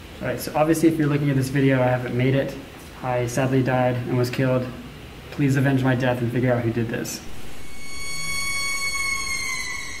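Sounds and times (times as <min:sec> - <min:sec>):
eerie high musical tone: 0:07.3 - 0:10.0.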